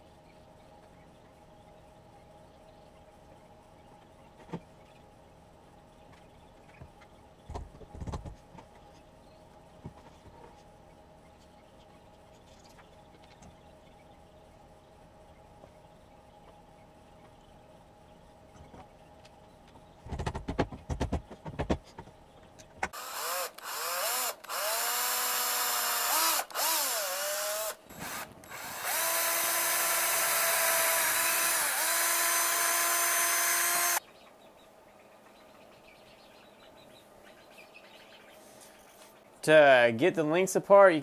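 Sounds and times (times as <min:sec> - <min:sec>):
cordless drill boring into wood: 0:23.0 - 0:34.0.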